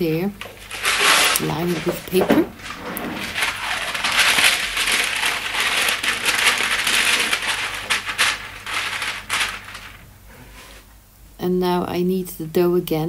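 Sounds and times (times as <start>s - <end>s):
baking paper crinkling: 0.0s - 10.8s.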